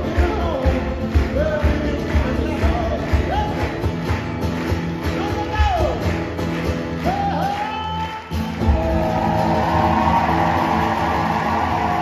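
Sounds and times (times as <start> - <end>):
acoustic guitars strummed: 0.0 - 12.0.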